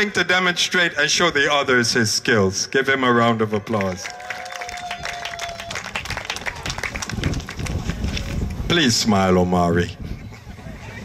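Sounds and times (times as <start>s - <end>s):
crowd applauding: 3.7s - 8.4s.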